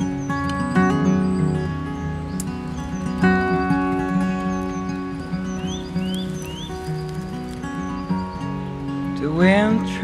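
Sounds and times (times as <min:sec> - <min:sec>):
acoustic guitar playing: 0:00.0 - 0:10.0
bird chirping: 0:00.0 - 0:10.0
faint birds chirping: 0:00.0 - 0:10.0.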